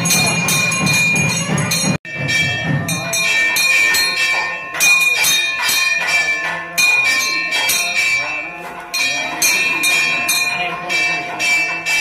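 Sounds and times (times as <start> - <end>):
brass hand bell ringing: 0.0 - 12.0.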